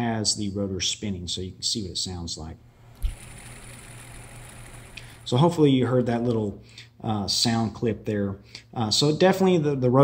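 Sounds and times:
watch rotor whirring: 2.8s - 5.6s.

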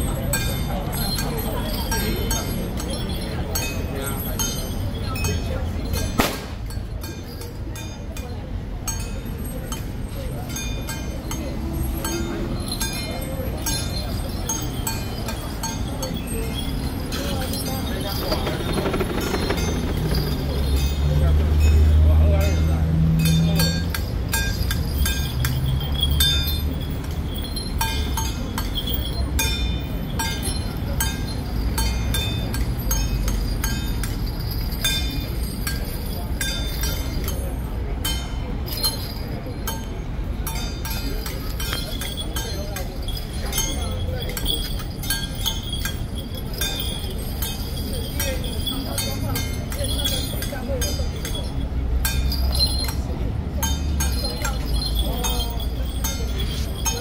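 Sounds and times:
low street rumble: 0.0s - 57.0s
metal percussion clinking: 0.0s - 57.0s.

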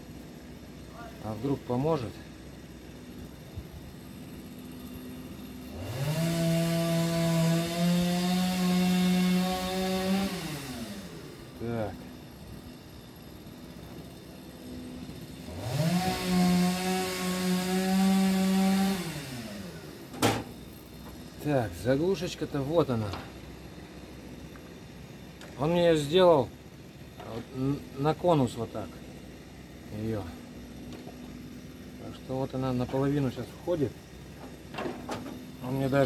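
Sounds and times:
chainsaw revving and sawing: 0.0s - 36.0s.

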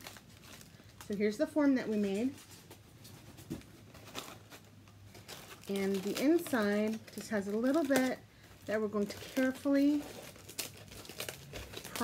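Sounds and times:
foil and paper crinkling: 0.0s - 12.0s.

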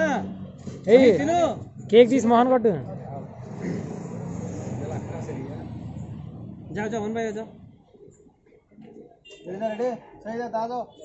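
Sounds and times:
city street traffic noise: 0.0s - 11.0s.

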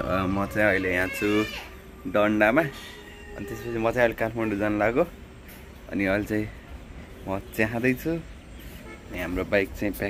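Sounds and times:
man talking: 0.0s - 2.8s, 3.4s - 5.2s, 5.8s - 8.4s, 9.0s - 10.0s.

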